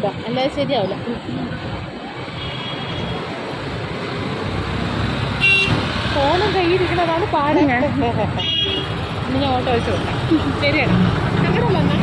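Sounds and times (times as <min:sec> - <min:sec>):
road traffic engines: 0:00.0 - 0:12.0
vehicle horn toots: 0:05.4 - 0:05.8, 0:08.4 - 0:08.9.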